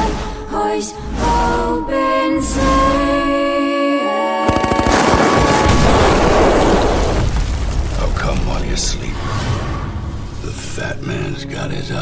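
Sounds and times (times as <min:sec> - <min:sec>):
automatic gunfire: 0:04.5 - 0:07.2.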